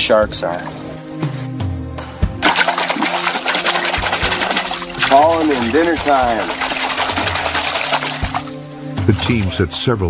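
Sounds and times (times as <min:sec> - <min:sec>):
low background music: 0:00.0 - 0:10.0
water splashing and sloshing: 0:02.4 - 0:10.0.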